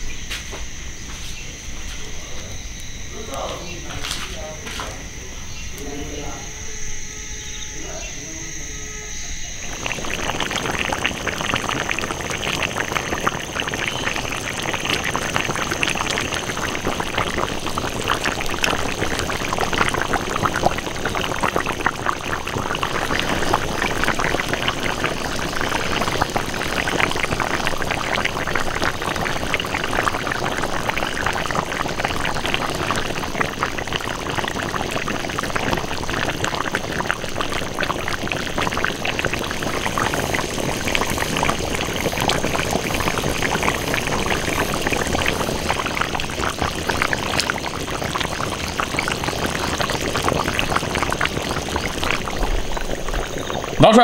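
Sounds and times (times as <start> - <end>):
stew bubbling and popping: 0.0 - 54.0.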